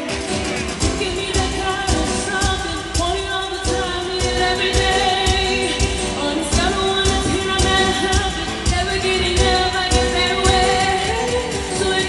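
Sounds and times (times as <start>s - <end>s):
backing music with drum beat: 0.0s - 12.0s
woman singing pop song: 0.0s - 12.0s.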